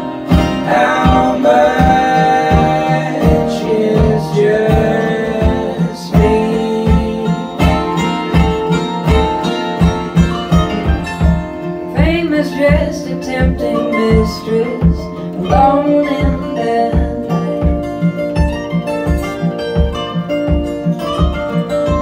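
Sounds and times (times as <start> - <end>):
acoustic string band playing: 0.0 - 22.0.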